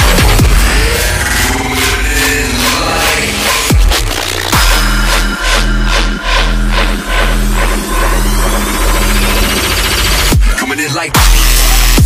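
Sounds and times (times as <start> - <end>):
rising high synth sweep: 0.0 - 10.3
heavy synth bass: 0.0 - 12.0.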